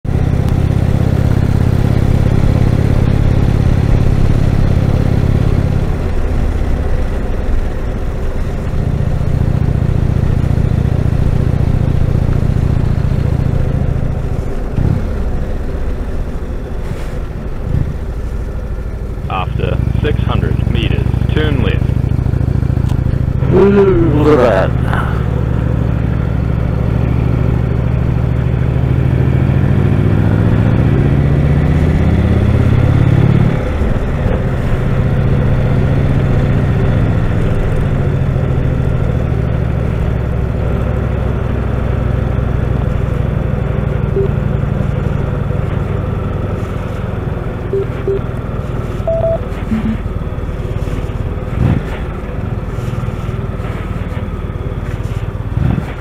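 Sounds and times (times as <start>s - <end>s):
motorcycle engine: 0.0s - 41.8s.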